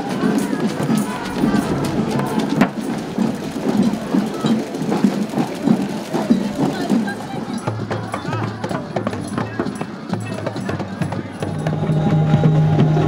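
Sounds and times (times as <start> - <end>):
steady drum beat: 0.0 - 12.9
street parade music: 0.0 - 13.0
voices of marchers and crowd: 0.0 - 13.0.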